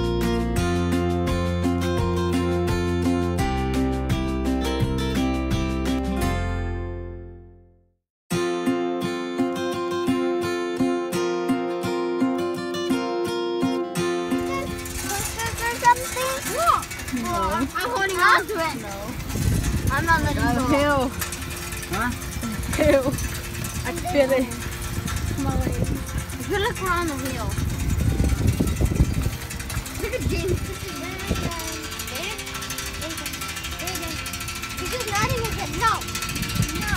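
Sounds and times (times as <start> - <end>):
strummed acoustic guitar music: 0.0 - 7.4, 8.3 - 36.9
rush of a moving bike: 14.2 - 36.9
pedal cart rumbling and knocking: 14.3 - 36.9.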